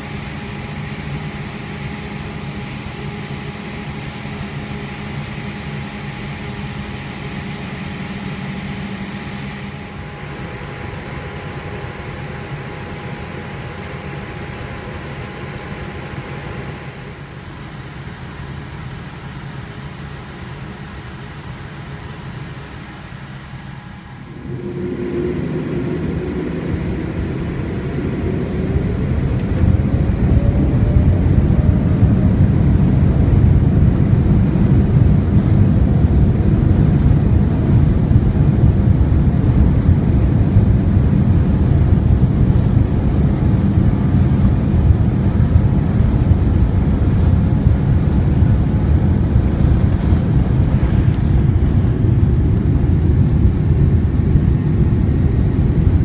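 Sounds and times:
faint steady tones: 0.0 - 32.6
airplane cabin hum: 0.0 - 56.0
jet engines spooling up: 0.0 - 56.0.

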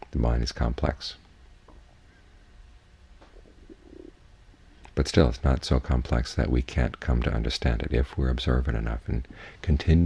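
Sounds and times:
man speaking: 0.0 - 1.2, 4.9 - 10.0
low room hum: 0.0 - 10.0
soft muffled sounds: 0.0 - 10.0.

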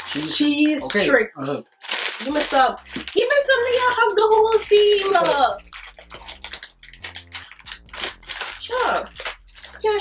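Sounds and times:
plastic snack bag crinkling: 0.0 - 1.1, 1.7 - 10.0.

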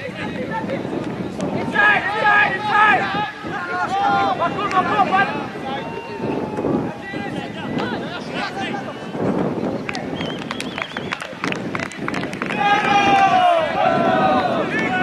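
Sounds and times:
players shouting: 1.6 - 8.9, 12.4 - 15.0.

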